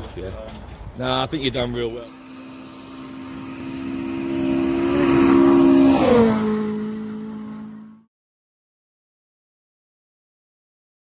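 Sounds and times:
rally car passing at speed: 0:01.9 - 0:08.1.

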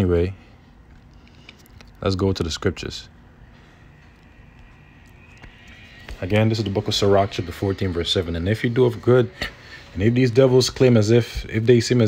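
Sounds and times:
person speaking: 0:05.1 - 0:12.0.

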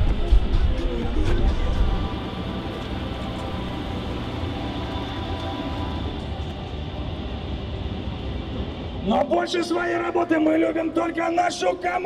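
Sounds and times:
faint music: 0:00.0 - 0:12.0
road train engine rumbling: 0:00.0 - 0:12.0.

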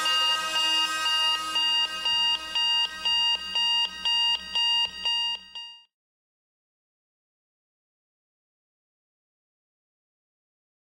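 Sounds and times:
alarm clock beeping: 0:00.0 - 0:05.9.

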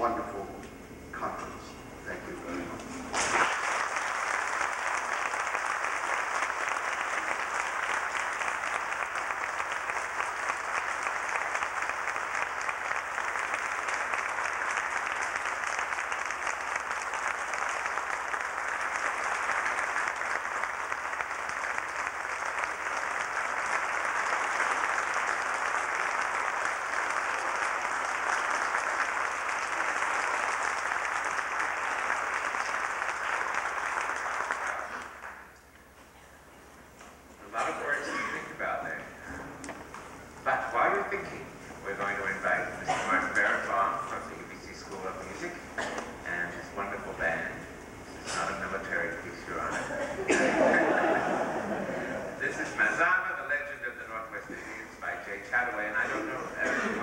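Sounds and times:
audience applauding: 0:03.1 - 0:35.6, 0:48.6 - 0:52.5.

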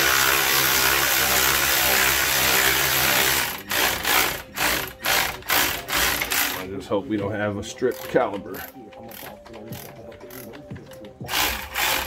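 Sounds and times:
power ratchet running: 0:00.0 - 0:06.6, 0:07.9 - 0:10.6, 0:11.2 - 0:12.0.

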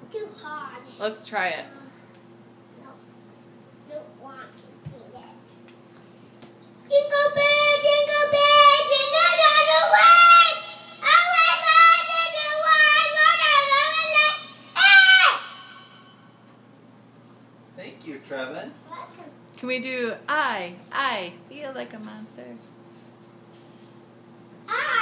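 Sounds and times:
boy singing in a high voice: 0:06.9 - 0:14.5.

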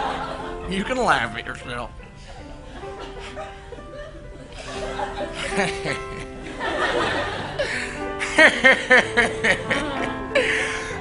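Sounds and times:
laughter: 0:00.0 - 0:00.6, 0:02.1 - 0:11.0
soft music with long held notes: 0:00.0 - 0:11.0.

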